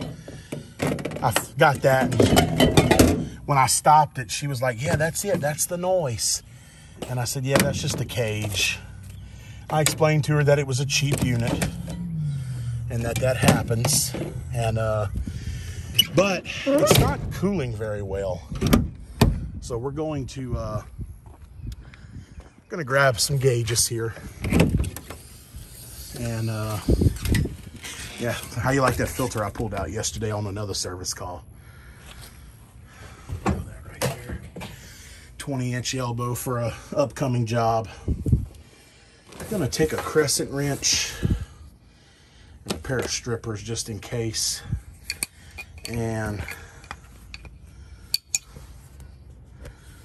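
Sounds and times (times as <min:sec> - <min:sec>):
metal tools clinking: 0:01.2 - 0:03.2, 0:45.0 - 0:48.6
metal compartment door opening: 0:07.5 - 0:08.5, 0:11.0 - 0:12.2, 0:13.0 - 0:14.4, 0:16.0 - 0:17.4.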